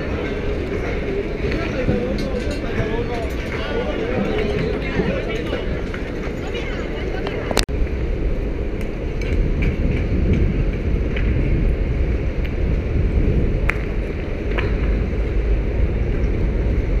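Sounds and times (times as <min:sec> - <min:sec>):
low street rumble: 0:00.0 - 0:17.0.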